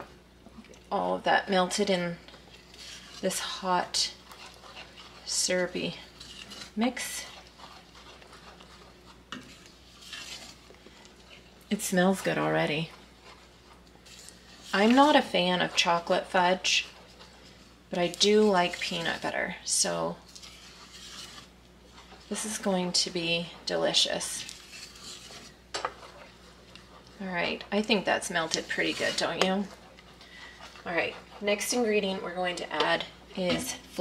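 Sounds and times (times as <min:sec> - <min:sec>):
wooden spoon scraping a pot: 0:01.4 - 0:34.0.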